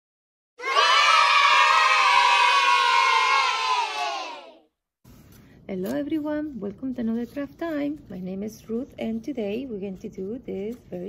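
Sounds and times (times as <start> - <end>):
children cheering and shouting: 0.6 - 4.6.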